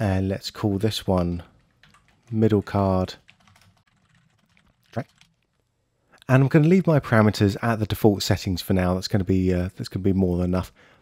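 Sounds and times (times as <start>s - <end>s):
computer keyboard clicks: 1.6s - 5.6s.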